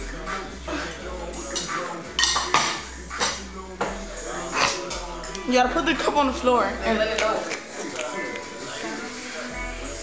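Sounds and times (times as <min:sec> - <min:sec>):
fork and plate clinking: 0:01.5 - 0:03.5.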